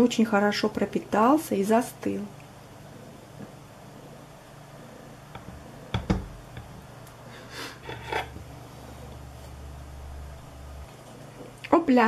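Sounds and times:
faint low hum: 0.0s - 12.0s
knife scraping cake: 7.7s - 8.4s.

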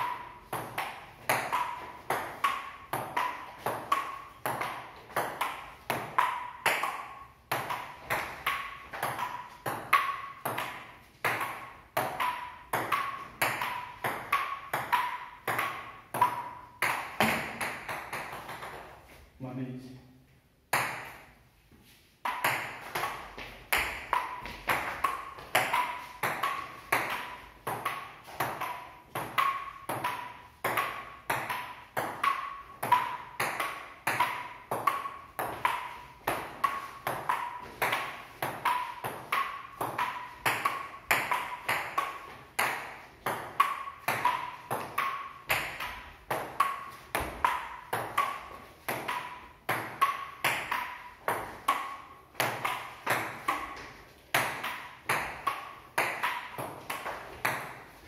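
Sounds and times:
paddles striking ball: 0.0s - 18.9s, 22.2s - 58.0s
ping-pong ball bouncing on table: 0.0s - 19.0s, 20.7s - 21.3s, 22.2s - 58.0s.

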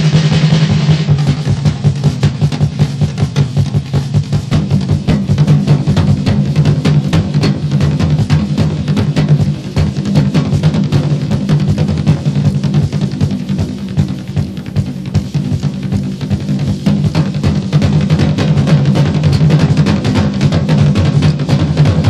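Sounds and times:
drum kit rapid fills: 0.0s - 22.0s.

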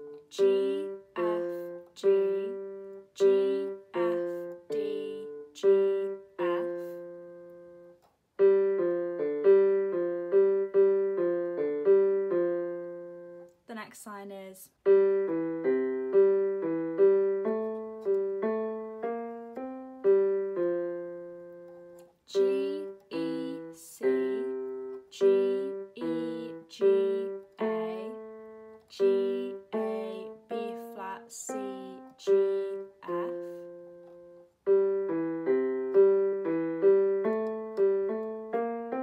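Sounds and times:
keyboard piano melody: 0.0s - 13.6s, 14.8s - 39.0s.

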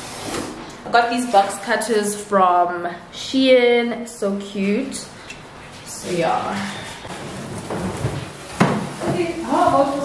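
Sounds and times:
objects handled in kitchen: 6.3s - 10.0s.

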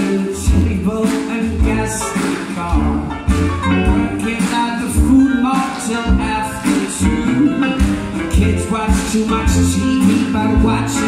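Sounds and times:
acoustic guitar: 0.0s - 11.0s
heavy bass beat: 0.0s - 11.0s
man singing: 0.0s - 11.0s
horns playing: 1.8s - 11.0s.

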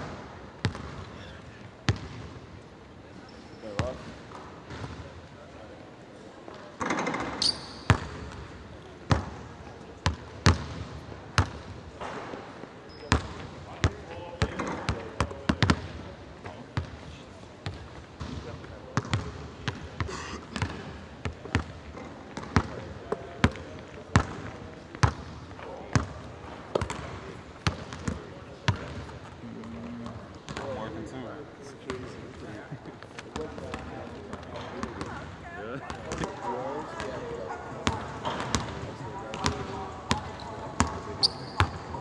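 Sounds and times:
basketballs bouncing on wooden floor: 0.6s - 1.1s, 10.0s - 12.2s, 17.6s - 22.8s, 24.2s - 29.8s, 37.8s - 41.9s.

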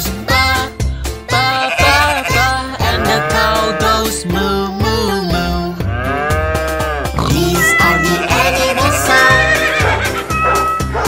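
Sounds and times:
upbeat children's song: 0.0s - 5.9s, 7.2s - 11.0s
cow mooing: 1.6s - 4.1s, 5.8s - 10.6s.

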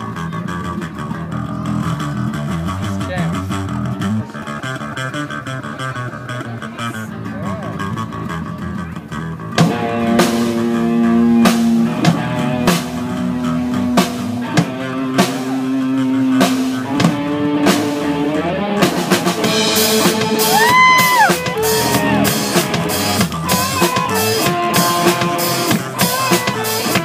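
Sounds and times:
electric guitar riff: 0.0s - 27.0s
rock band playing live: 9.5s - 27.0s.

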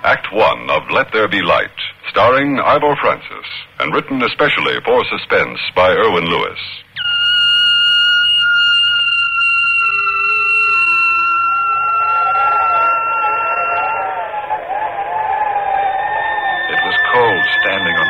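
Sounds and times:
held high musical note: 7.0s - 14.3s
wavering melody line: 7.0s - 14.3s, 16.1s - 18.0s.

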